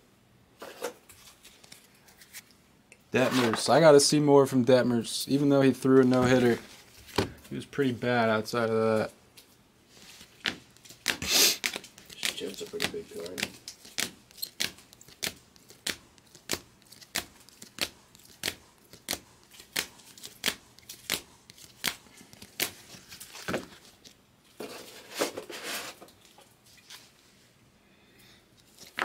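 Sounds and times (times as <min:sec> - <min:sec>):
cards rustling and sliding: 0:00.6 - 0:02.5, 0:09.9 - 0:27.2, 0:28.6 - 0:29.0.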